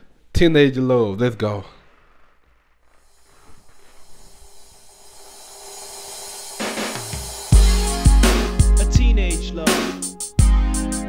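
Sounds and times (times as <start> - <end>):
faint hiss: 1.4 - 8.6.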